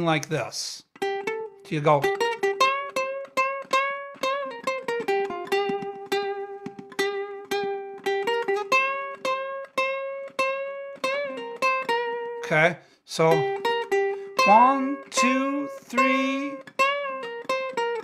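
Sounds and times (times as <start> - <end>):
ukulele blues picking: 0.0 - 18.0.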